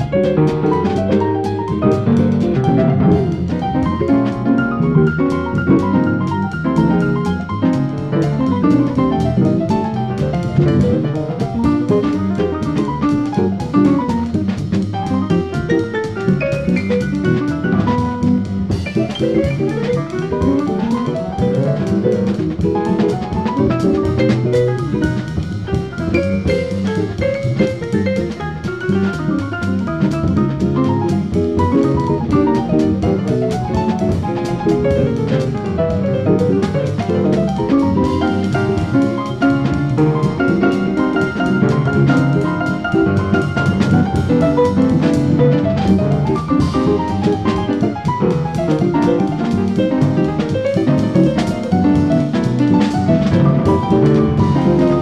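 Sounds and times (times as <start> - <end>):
drum kit: 0.0 - 55.0
electric jazz guitar runs: 0.0 - 55.0.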